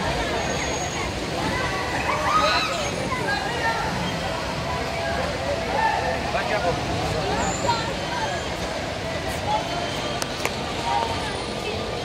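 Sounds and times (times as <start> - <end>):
bumper-car ride din: 0.0 - 12.0
faint voices: 0.0 - 12.0.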